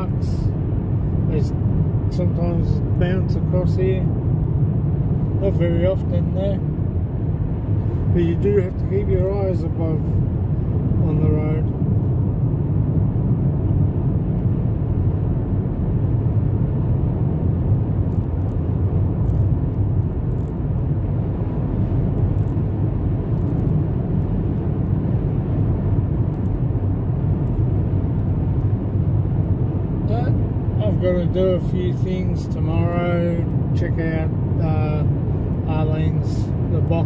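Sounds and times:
car road noise from inside: 0.0 - 37.0.

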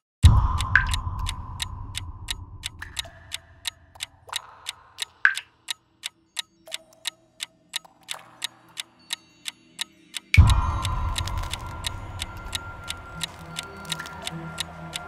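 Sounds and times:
clock ticking: 0.2 - 15.0
held soundtrack tones: 10.4 - 15.0.

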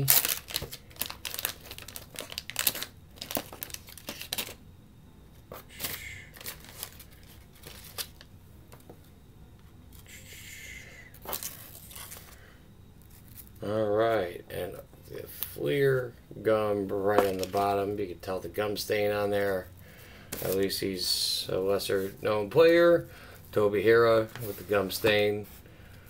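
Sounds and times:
wax paper wrapper crinkling: 0.0 - 4.6, 5.8 - 8.3.

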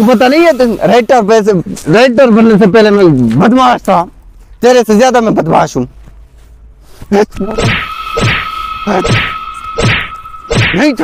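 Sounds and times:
steady high tone: 7.4 - 11.0
punch and slap hits: 7.6 - 8.4, 9.1 - 10.8.

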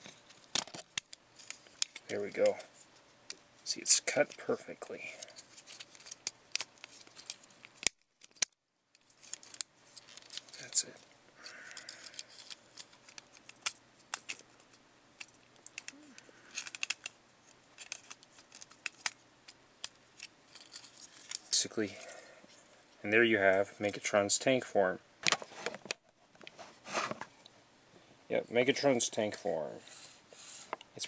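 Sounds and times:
plastic toy joints clicking: 15.2 - 17.1.

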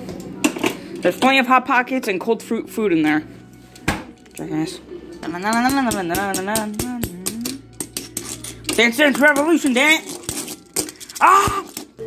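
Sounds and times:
person singing wordless tune: 5.2 - 7.9.

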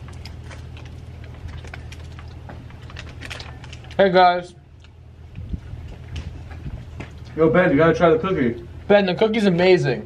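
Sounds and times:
paper wrapper crackling: 0.0 - 5.0
steady low hum: 0.0 - 10.0.

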